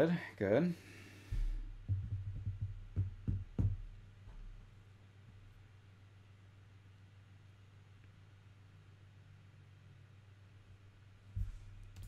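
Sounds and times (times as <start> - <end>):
low muffled thumps and knocks: 1.3 - 4.8, 11.3 - 12.0.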